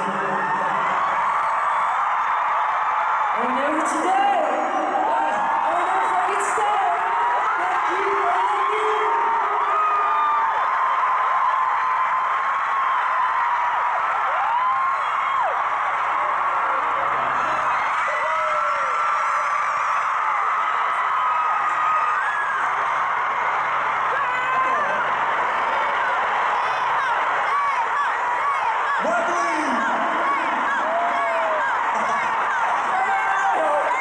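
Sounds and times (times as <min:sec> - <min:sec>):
stadium crowd screaming and cheering: 0:00.0 - 0:34.0.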